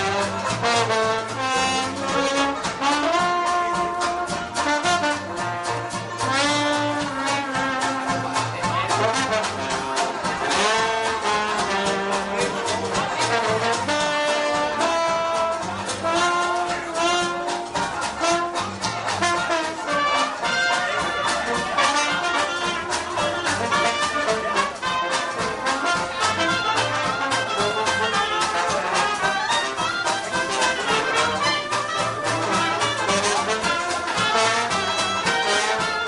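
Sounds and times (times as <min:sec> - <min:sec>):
jazz band playing: 0:00.0 - 0:36.0.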